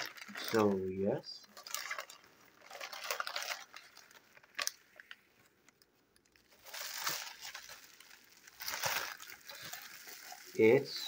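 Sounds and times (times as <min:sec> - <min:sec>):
plastic bag and bubble wrap crinkling: 0:00.0 - 0:11.0.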